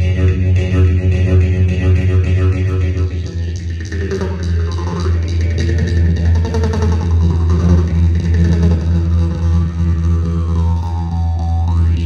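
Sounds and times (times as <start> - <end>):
jaw harps playing: 0.0 - 12.0.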